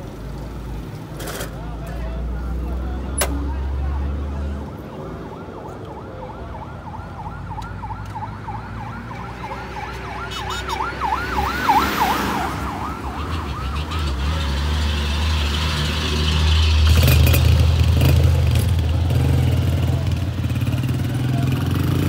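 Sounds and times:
siren yelping: 4.8s - 14.4s
heavy vehicle engine rumble: 12.7s - 22.0s.

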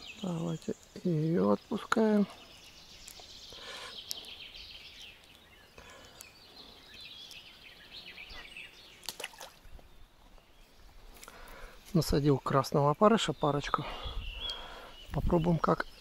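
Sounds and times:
small birds singing: 0.0s - 16.0s
faint clicks: 5.0s - 6.4s.

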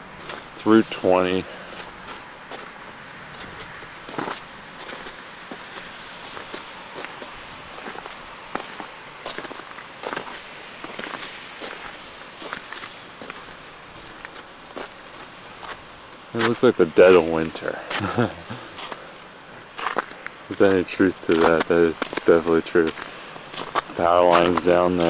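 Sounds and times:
steady hiss: 0.0s - 25.0s
footsteps crunching through snow: 0.1s - 25.0s.

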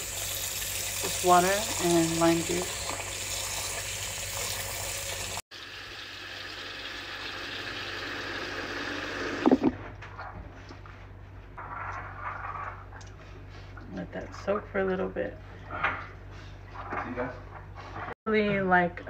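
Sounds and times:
faucet water splashing on fruit: 0.0s - 8.3s.

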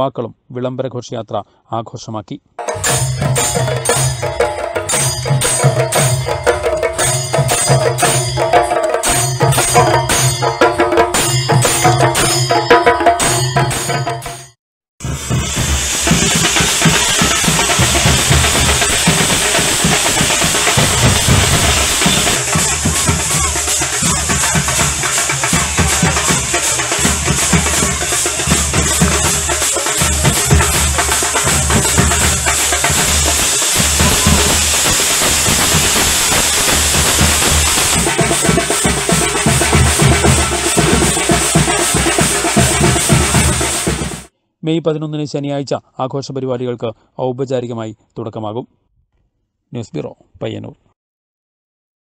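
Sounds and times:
cymbals hissing: 2.6s - 12.5s, 15.0s - 44.3s
deep drum thuds: 15.0s - 44.3s.

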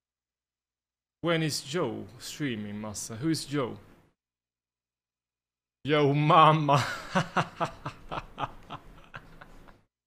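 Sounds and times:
man laughing: 6.7s - 9.9s.

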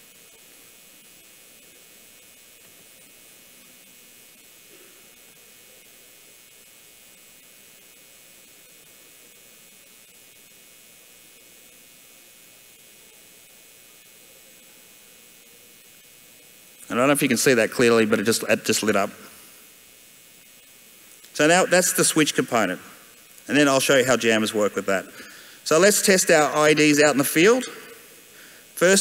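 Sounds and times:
faint electronic hum: 0.0s - 29.0s
faint steady hiss: 0.0s - 29.0s.

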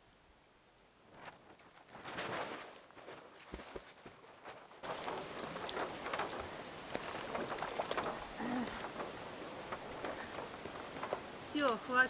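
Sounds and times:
water splashing and sloshing: 0.8s - 12.0s.

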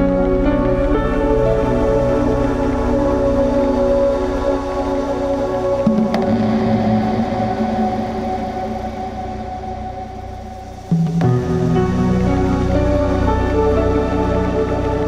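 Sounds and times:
low bass notes: 0.0s - 15.0s
suspenseful cinematic pad chords: 0.0s - 15.0s.

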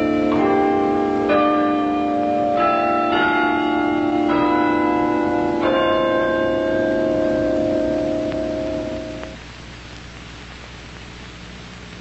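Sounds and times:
bells playing slow tune: 0.0s - 9.4s.

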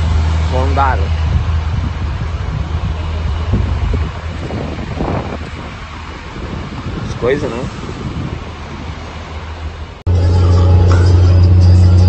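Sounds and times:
truck idling: 0.0s - 6.8s, 8.2s - 12.0s
wind on microphone: 0.0s - 10.0s.

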